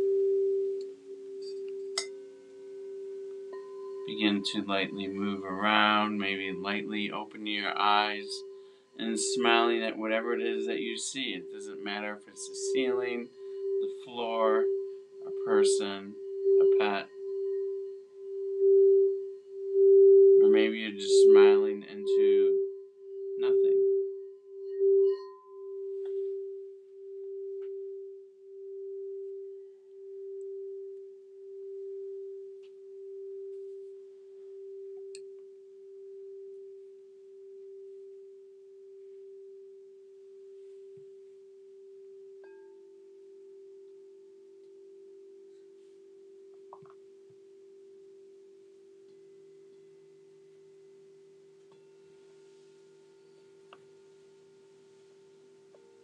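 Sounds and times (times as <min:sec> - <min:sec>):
lower singing bowl tone: 0:00.0 - 0:56.0
singing bowl ringing: 0:00.0 - 0:56.0.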